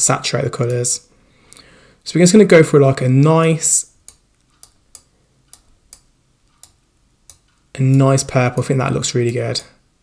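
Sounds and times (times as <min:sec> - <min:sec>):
computer mouse clicking: 0:04.0 - 0:08.1.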